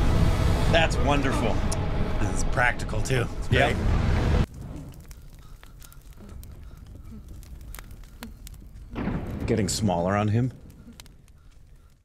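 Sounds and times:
low steady rumble: 0.0s - 5.2s
torch fire crackling: 1.8s - 12.0s.

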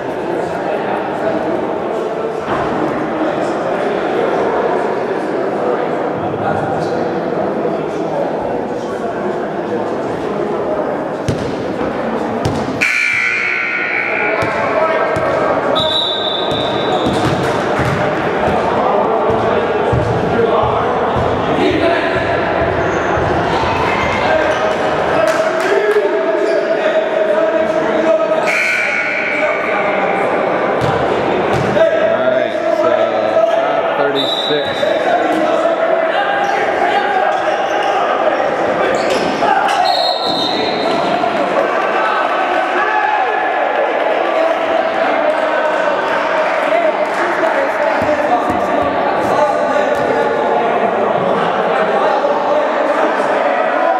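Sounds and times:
voices talking and calling out: 0.0s - 53.9s.

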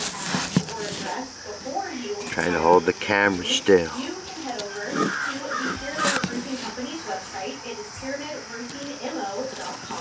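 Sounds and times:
bird calling: 4.6s - 7.2s
rough bird calls: 4.7s - 6.5s.

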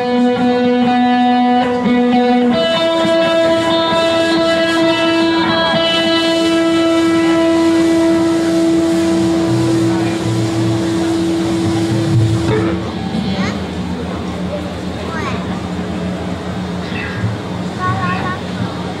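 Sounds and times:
electric guitar and bass chord: 0.0s - 19.0s.

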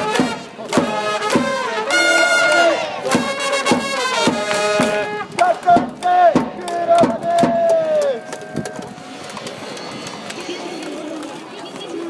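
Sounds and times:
held trumpet notes: 0.0s - 5.7s
steady claps or drum strokes: 0.0s - 11.4s
crowd chanting in unison: 0.7s - 3.4s, 4.4s - 8.3s.

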